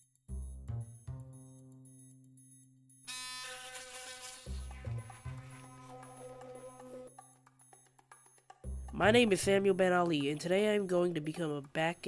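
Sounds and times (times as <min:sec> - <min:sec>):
electric toothbrush buzzing: 0:03.1 - 0:07.1.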